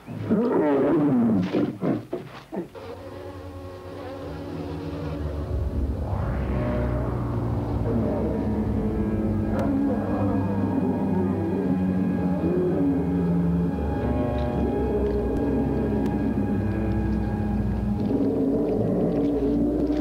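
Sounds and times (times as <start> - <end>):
eerie buzzing drone music: 2.8 - 20.0
loud wavering cries: 7.6 - 19.6.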